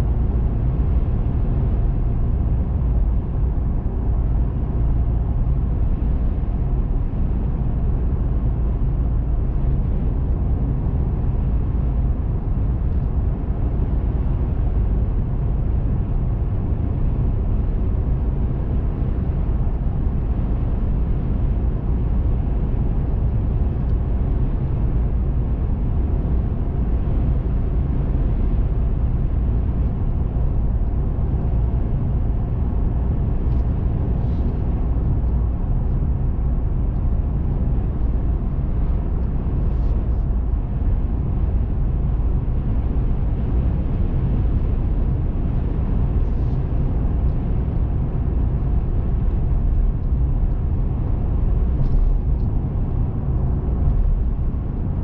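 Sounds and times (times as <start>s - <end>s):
car interior road rumble: 0.0s - 55.0s.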